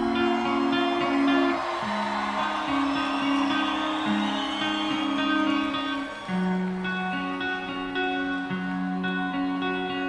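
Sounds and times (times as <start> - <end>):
rock guitar chords: 0.0 - 10.0.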